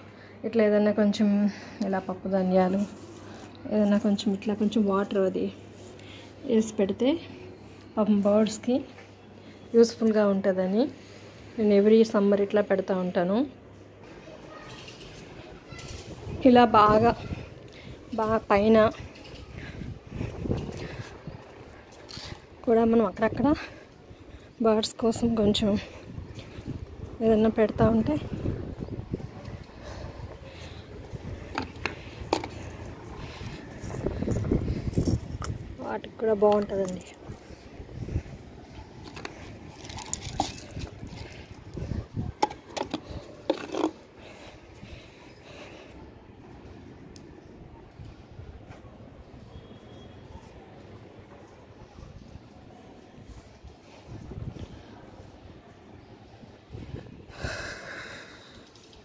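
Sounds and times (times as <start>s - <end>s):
bowls clicking on concrete: 31.3s - 33.0s
person speaking: 35.5s - 37.5s.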